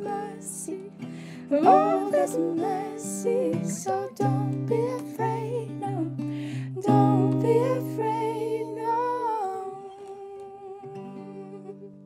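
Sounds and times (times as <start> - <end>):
acoustic guitar low notes: 0.0 - 12.0.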